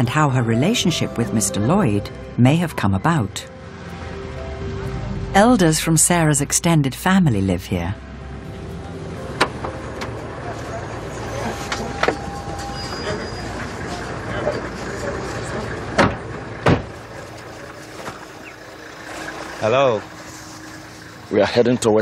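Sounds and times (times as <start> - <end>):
steady low rumble: 0.0 - 11.2
car door clicks and knocks: 16.0 - 16.9.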